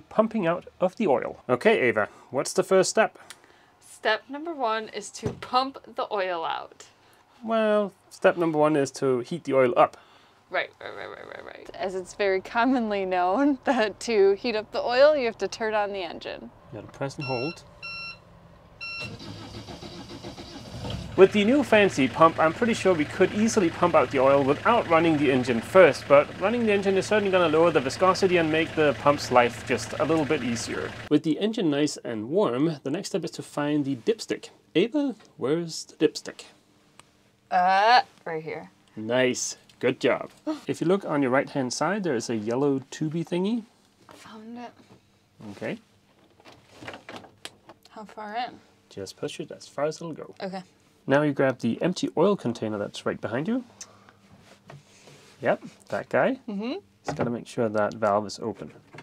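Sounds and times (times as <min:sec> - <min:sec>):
engine panel beep: 0:17.2 - 0:20.5
diesel engine starter cranking: 0:18.8 - 0:31.1.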